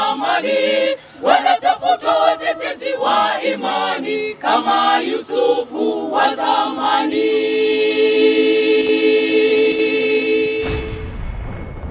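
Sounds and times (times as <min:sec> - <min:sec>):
choir singing unaccompanied: 0:00.0 - 0:11.1
low rumbling boom: 0:10.6 - 0:11.9.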